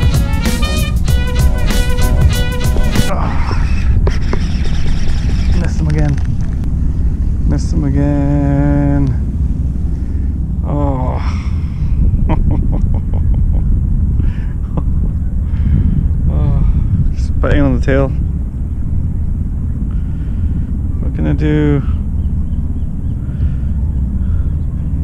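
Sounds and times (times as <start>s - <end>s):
man humming: 0.0s - 4.0s
low outdoor rumble: 0.0s - 25.0s.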